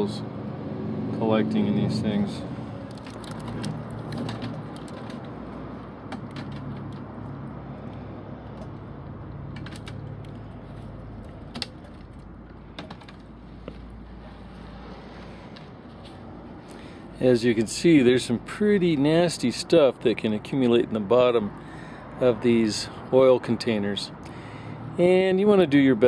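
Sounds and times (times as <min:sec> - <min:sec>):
oil pouring in thin stream: 0:02.8 - 0:05.2.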